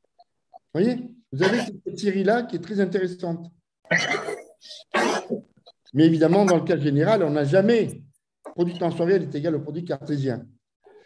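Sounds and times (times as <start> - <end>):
person coughing: 1.4 - 1.8, 3.9 - 5.5.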